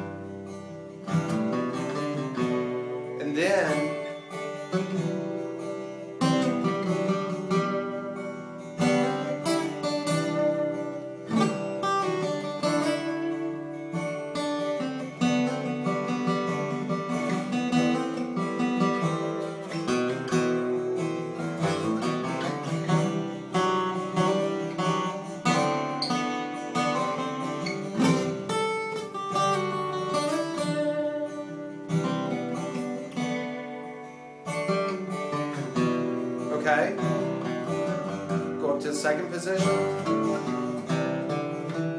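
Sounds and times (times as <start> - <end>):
acoustic guitar lead runs: 0.0 - 41.9
strummed guitar chords: 0.0 - 41.9.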